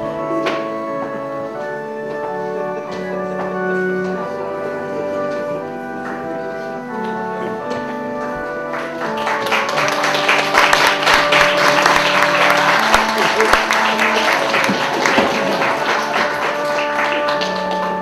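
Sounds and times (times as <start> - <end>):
music of held chords: 0.0 - 18.0
audience applauding: 8.6 - 18.0.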